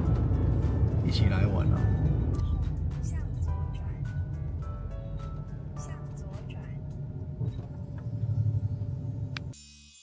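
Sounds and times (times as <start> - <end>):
van engine and road rumble: 0.0 - 9.6.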